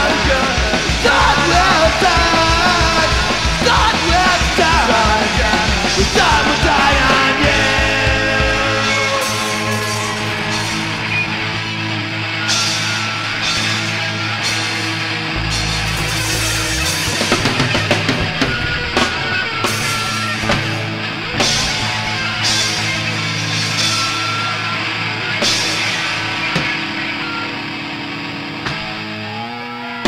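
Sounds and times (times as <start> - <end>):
punk rock band playing: 0.0 - 30.0
cymbal crashes: 15.4 - 20.6.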